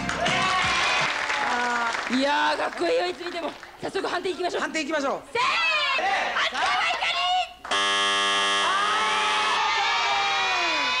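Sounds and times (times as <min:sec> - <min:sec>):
electronic buzzer tone: 0:07.7 - 0:09.6.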